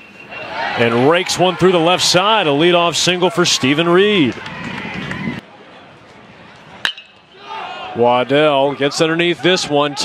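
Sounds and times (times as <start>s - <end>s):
faint crowd noise: 0.0s - 10.0s
metal bat hitting ball: 6.8s - 7.2s.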